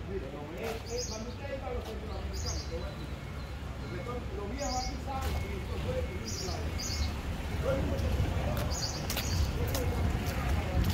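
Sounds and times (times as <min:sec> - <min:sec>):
bird chirp: 0:00.7 - 0:07.2, 0:08.6 - 0:09.6.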